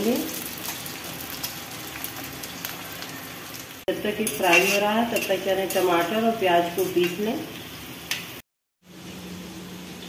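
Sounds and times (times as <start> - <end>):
vegetable pieces frying in oil: 0.0 - 10.0.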